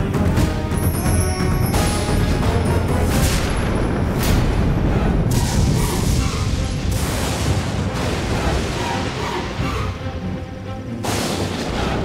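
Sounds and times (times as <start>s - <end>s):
dramatic background score: 0.0s - 12.0s
deep booming rumbles: 2.0s - 9.6s.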